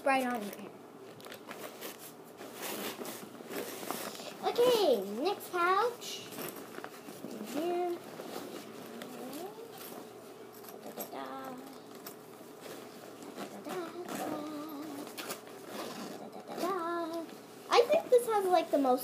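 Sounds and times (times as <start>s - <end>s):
fabric backpack rustling: 1.2s - 5.3s, 6.2s - 18.9s.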